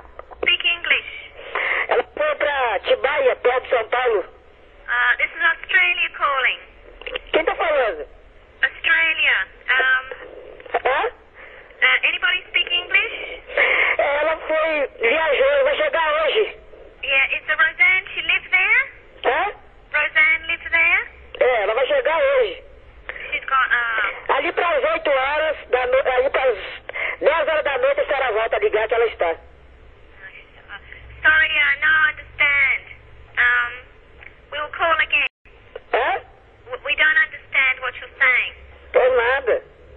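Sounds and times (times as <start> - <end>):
people talking over a telephone: 0.2 - 39.9.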